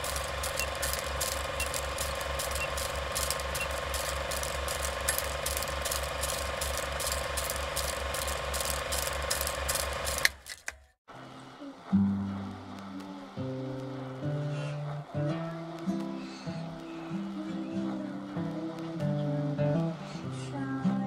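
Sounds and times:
film projector clattering: 0:00.0 - 0:10.9
projector hum: 0:00.0 - 0:21.0.

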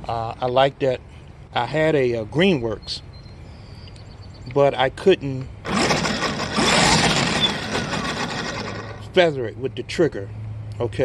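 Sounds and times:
string trimmer whirring: 0:05.6 - 0:09.2.

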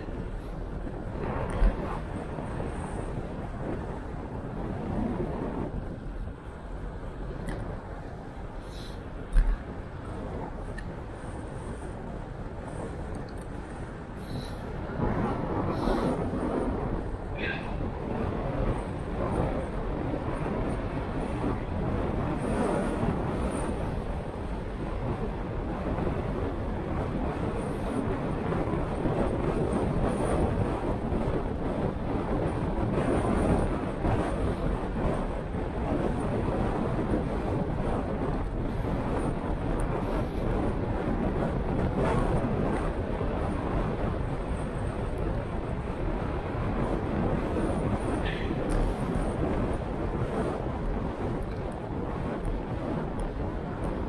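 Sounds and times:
tyres rumbling on road: 0:00.0 - 0:54.0
wind on microphone: 0:00.0 - 0:54.0.

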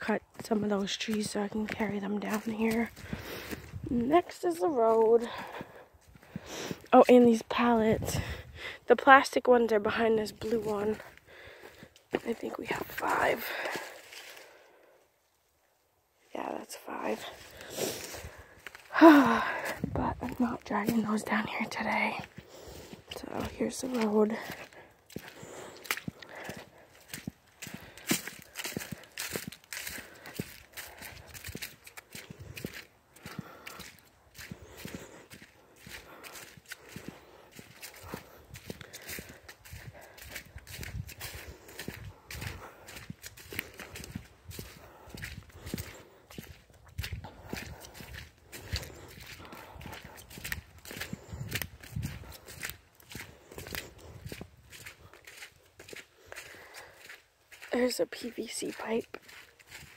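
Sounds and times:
footsteps on leaves and mud: 0:00.0 - 0:15.4, 0:16.2 - 0:59.9.

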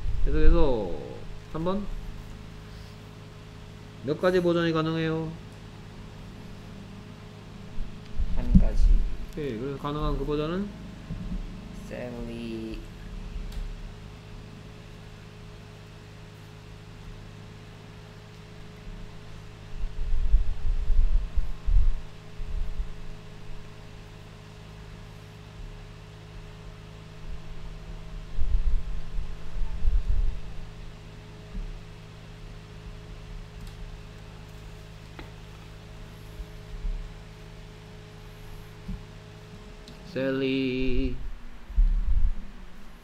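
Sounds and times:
low electrical hum and hiss: 0:00.0 - 0:43.0
low rumbling bumps: 0:05.9 - 0:12.0, 0:40.9 - 0:43.0.

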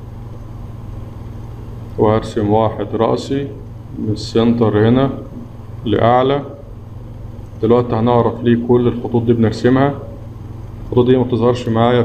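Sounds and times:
low hum with faint hiss: 0:00.0 - 0:12.0.

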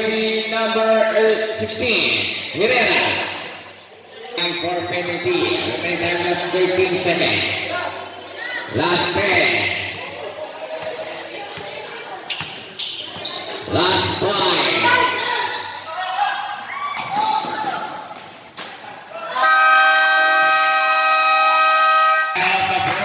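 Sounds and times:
basketball bouncing on court: 0:09.7 - 0:13.7.

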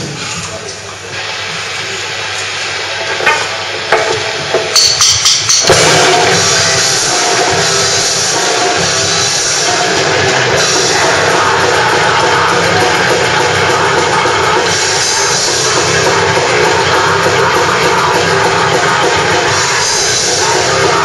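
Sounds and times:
death metal band playing live: 0:02.9 - 0:21.0.

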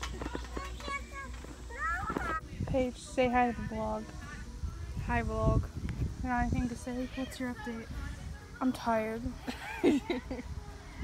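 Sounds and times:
children's voices: 0:00.0 - 0:02.4, 0:06.7 - 0:11.0.

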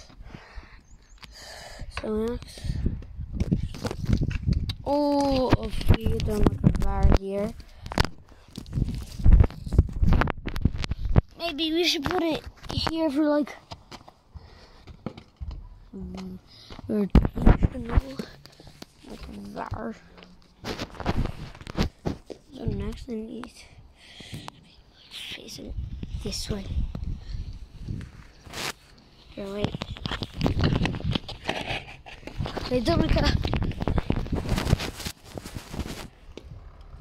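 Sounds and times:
hand handling phone microphone: 0:14.8 - 0:23.0, 0:26.8 - 0:36.5
phone rubbing against clothing: 0:27.8 - 0:33.0
short rustle: 0:33.7 - 0:36.2.

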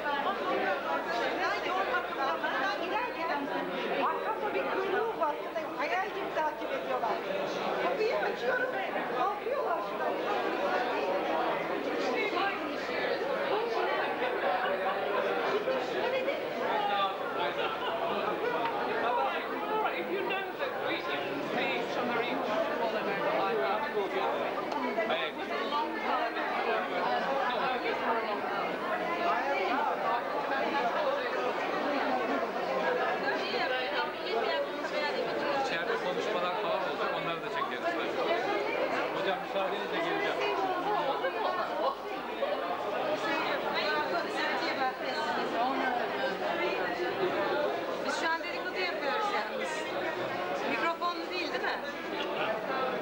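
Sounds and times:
crowd chatter: 0:00.0 - 0:53.0.

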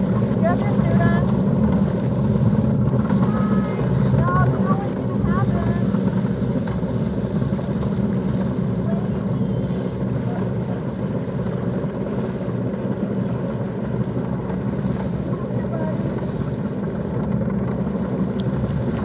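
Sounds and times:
motorboat engine idling: 0:00.0 - 0:19.0.

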